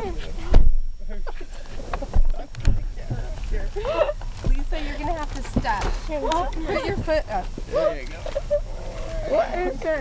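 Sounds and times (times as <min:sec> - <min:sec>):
dull thumps: 0:02.0 - 0:07.6.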